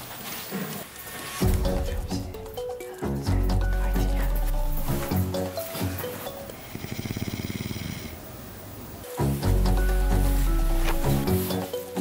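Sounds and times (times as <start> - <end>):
woman snoring: 6.6 - 8.2.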